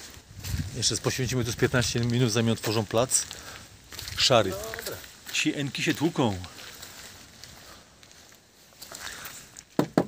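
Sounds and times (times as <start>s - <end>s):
faint background noise: 0.0s - 10.0s
sharp knocks: 9.8s - 10.0s.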